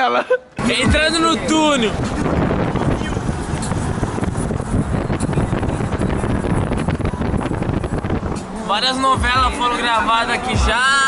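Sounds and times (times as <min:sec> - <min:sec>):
car engine and road noise: 0:00.4 - 0:11.0.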